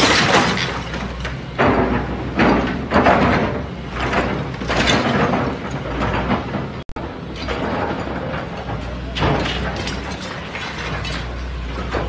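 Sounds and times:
diesel engine droning: 0.0s - 12.0s
masonry crunching: 0.0s - 12.0s.

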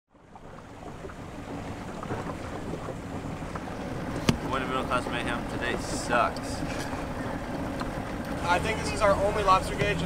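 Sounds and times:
outboard motor running: 0.1s - 10.0s
water noise: 0.1s - 10.0s.

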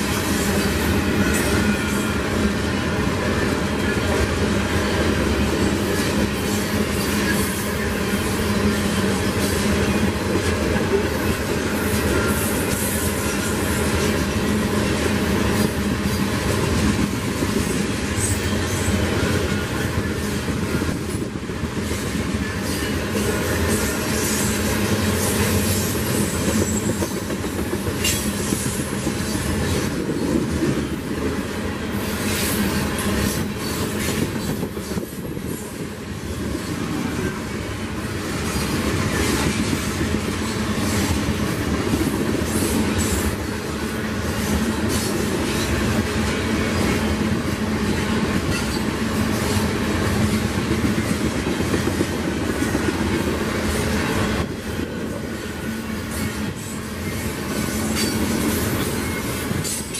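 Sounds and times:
steel wheels rumbling on rails: 0.0s - 59.9s.

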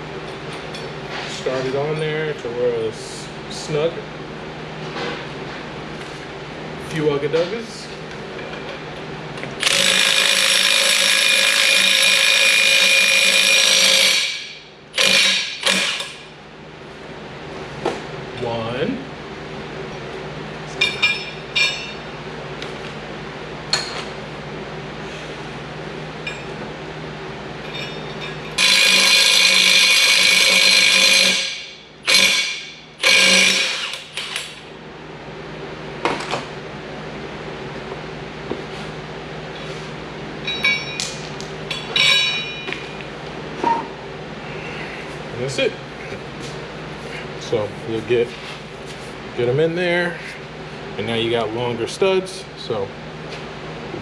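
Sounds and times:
impact wrench running: 9.5s - 16.3s, 28.6s - 34.7s.

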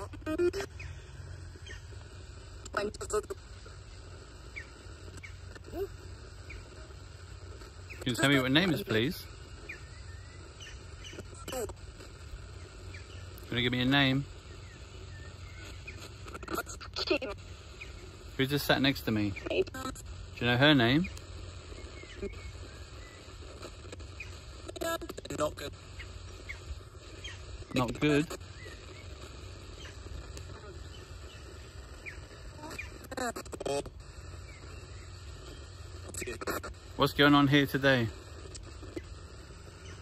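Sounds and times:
faint chirps: 0.0s - 40.0s
radio sweeping stations hiss: 0.0s - 40.0s
sharp clicks: 21.0s - 24.6s, 27.3s - 40.0s.

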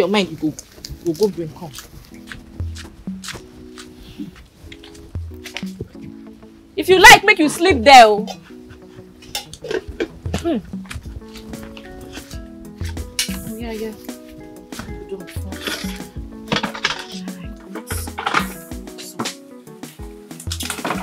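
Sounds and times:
film music of held notes: 0.0s - 21.0s
metal pots and dishes clinking: 9.2s - 11.5s, 15.6s - 19.3s, 20.5s - 21.0s.

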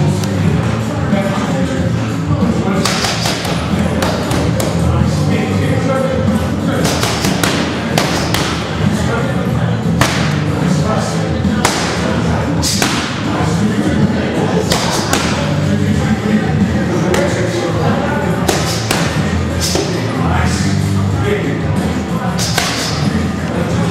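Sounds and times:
boxing gloves punching focus mitts: 2.9s - 4.8s, 6.8s - 8.7s, 10.0s - 10.4s, 11.6s - 12.0s, 12.6s - 13.2s, 18.4s - 19.9s, 22.4s - 23.0s.

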